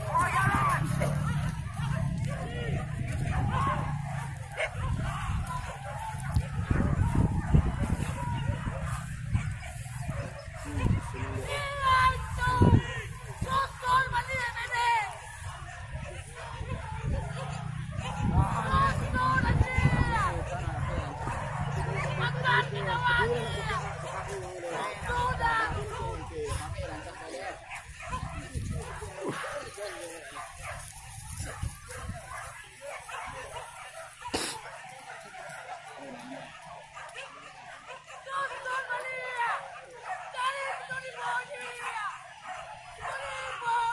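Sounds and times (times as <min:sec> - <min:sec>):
dogs barking and yelping: 0:00.0 - 0:43.9
people's voices: 0:00.0 - 0:43.9.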